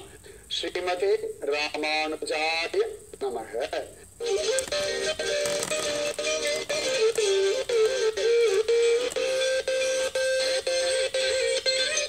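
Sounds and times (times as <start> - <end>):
melody with sliding notes: 4.2 - 12.0
music from television speaker: 4.2 - 12.0.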